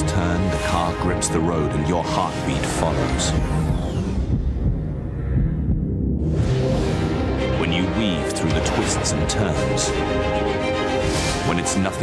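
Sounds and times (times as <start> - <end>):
low throbbing heartbeat effect: 2.7 - 7.6.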